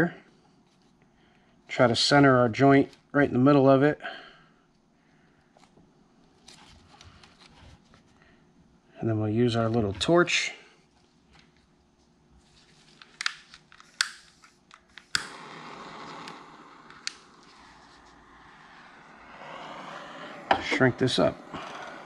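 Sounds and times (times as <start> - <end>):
butane torch clicking: 13.0 - 22.0
torch hissing: 15.0 - 22.0.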